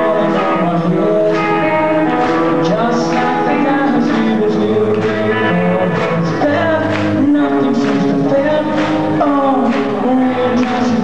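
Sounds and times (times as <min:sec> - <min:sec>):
guitar accompaniment: 0:00.0 - 0:11.0
man singing: 0:00.0 - 0:11.0.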